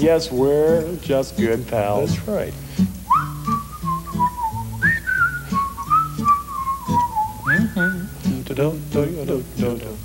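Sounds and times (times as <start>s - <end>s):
whistled melody: 3.1s - 8.4s.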